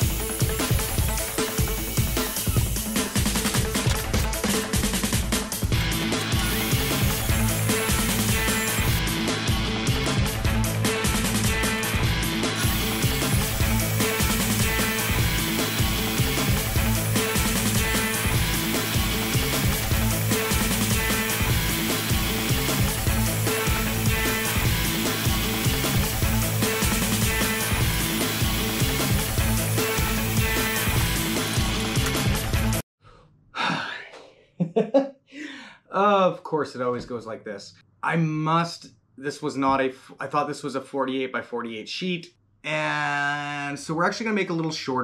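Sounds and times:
background music with steady beat: 0.0 - 32.8
man sighing: 33.0 - 34.5, 35.3 - 35.9.

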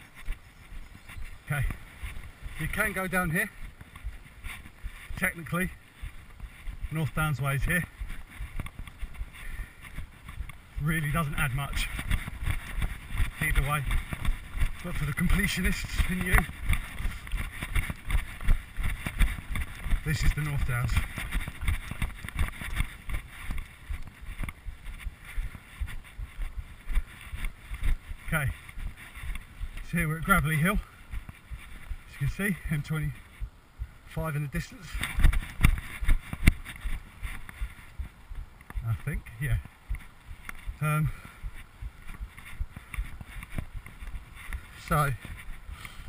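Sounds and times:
knocks and scuffs on camera: 0.0 - 46.0
running footfalls on dirt: 0.0 - 46.0.

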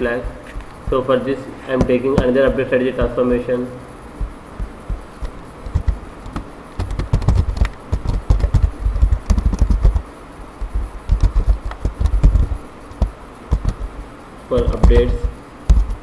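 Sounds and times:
keyboard typing: 4.2 - 16.0.

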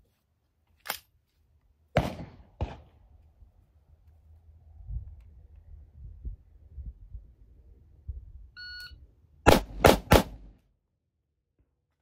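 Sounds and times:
gunshots: 2.0 - 2.9, 9.5 - 10.5
low wind rumble: 2.9 - 9.4
shot timer beep: 8.6 - 9.0.

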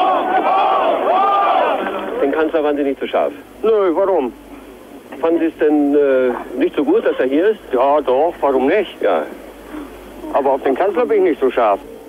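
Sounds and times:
crowd shouting: 0.0 - 2.4.

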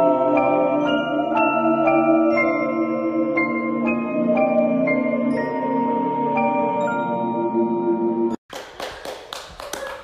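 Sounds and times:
person clapping hands: 8.5 - 10.0.

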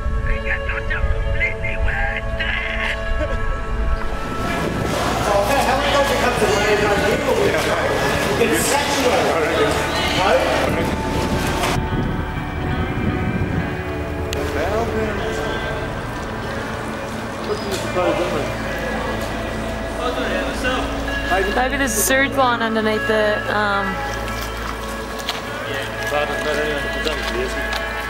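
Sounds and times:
background music with sustained tones: 0.0 - 28.0
indistinct voices talking: 0.0 - 28.0.

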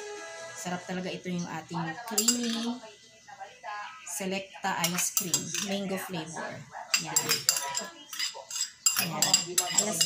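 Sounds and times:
spoon scraping against a bowl: 2.0 - 2.8, 4.8 - 6.0, 6.9 - 10.0.

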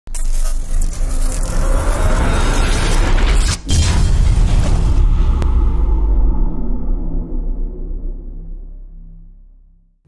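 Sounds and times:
boom: 3.7 - 9.8
deep rumble: 3.7 - 10.0.

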